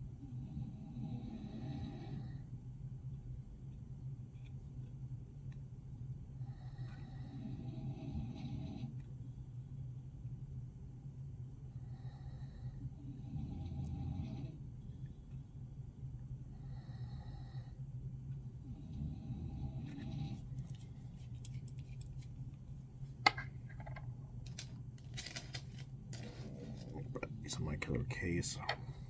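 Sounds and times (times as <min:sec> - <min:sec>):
steady low hum: 0:00.0 - 0:29.0
small metal clicks and scrapes: 0:20.6 - 0:22.4, 0:23.7 - 0:27.0.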